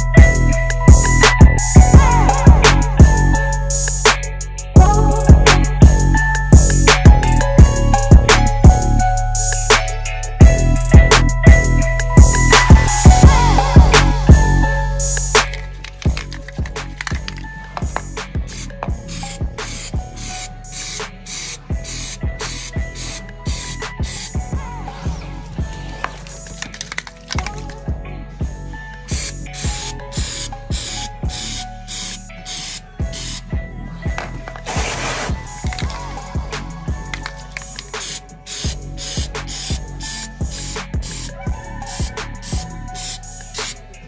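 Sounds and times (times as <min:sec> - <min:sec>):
background music with steady beat: 0:00.0 - 0:44.0
aerosol spray can hissing: 0:15.0 - 0:24.3, 0:29.1 - 0:33.4, 0:34.2 - 0:36.0, 0:37.0 - 0:43.8.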